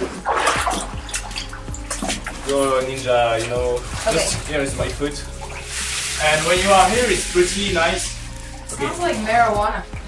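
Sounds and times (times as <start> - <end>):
shallow water splashing: 0.0 - 10.0.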